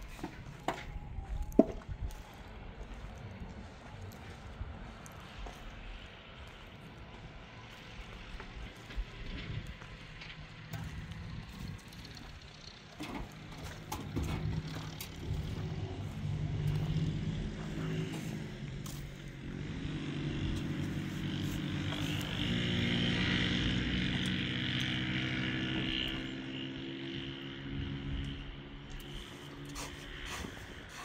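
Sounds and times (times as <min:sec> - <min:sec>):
engine running steadily: 0:00.0 - 0:31.0
shovel scraping mixing mortar: 0:29.1 - 0:31.0.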